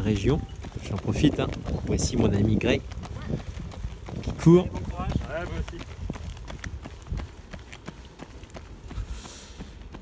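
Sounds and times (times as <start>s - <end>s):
running footsteps on asphalt: 0.0s - 10.0s.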